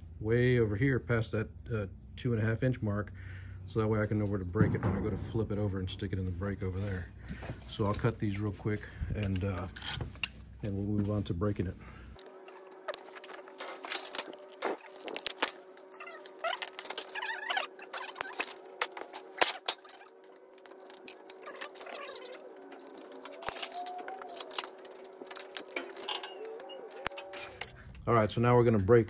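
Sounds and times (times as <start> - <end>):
steady hum: 0.0 - 28.6.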